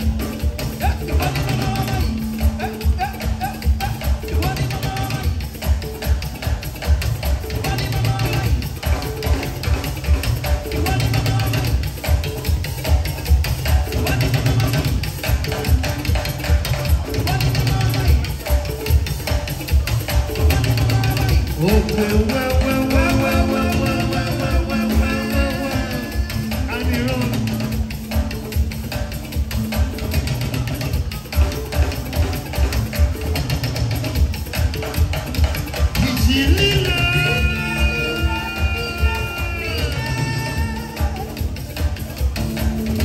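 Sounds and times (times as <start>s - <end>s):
live band dance music: 0.0s - 43.0s.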